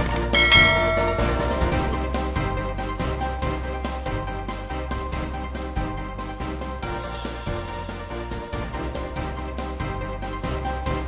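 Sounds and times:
background music: 0.0s - 11.0s
bright bell-like chime: 0.4s - 2.1s.

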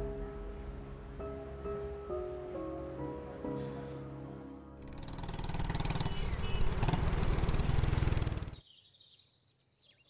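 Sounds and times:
motorcycle engine running: 4.8s - 8.6s.

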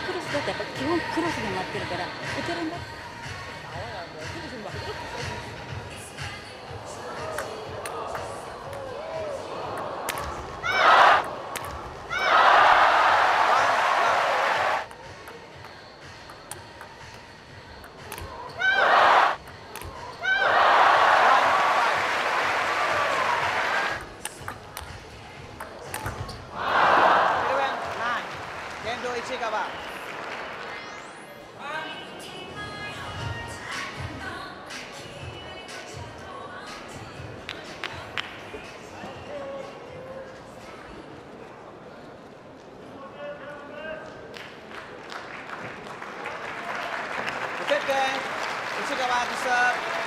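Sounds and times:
crowd cheering and shouting: 6.9s - 14.9s, 18.4s - 24.0s, 26.5s - 28.4s.

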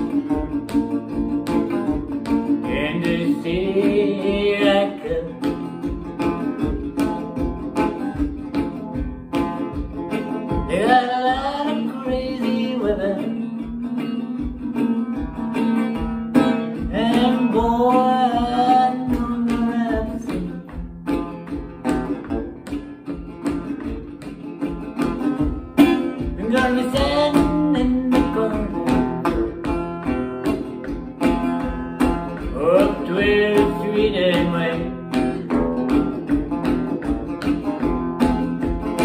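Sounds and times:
resonator guitar blues rhythm: 0.0s - 39.0s
man singing: 1.9s - 5.8s, 10.5s - 15.0s, 16.3s - 20.9s, 25.8s - 29.4s, 32.2s - 36.0s.

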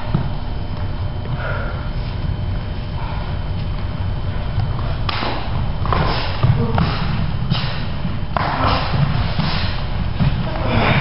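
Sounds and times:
low room and microphone rumble: 0.0s - 11.0s.

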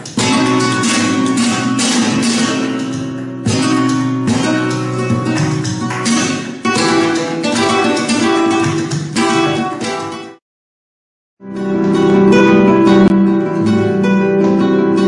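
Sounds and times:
flamenco guitar strumming: 0.0s - 10.4s, 11.4s - 15.0s.

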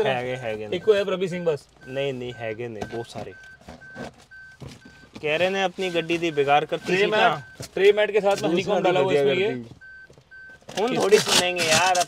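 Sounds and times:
man talking: 0.0s - 3.5s, 5.2s - 9.8s
car warning chime beeping: 0.0s - 11.0s.

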